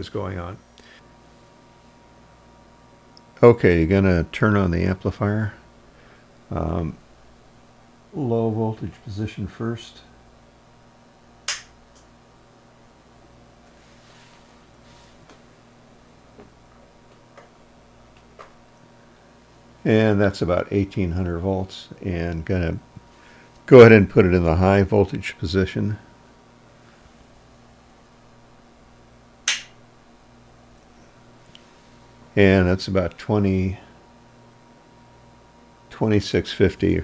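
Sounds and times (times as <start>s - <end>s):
faint low hum: 0.0s - 37.0s
amplifier switch click: 11.4s - 12.1s, 29.4s - 29.8s.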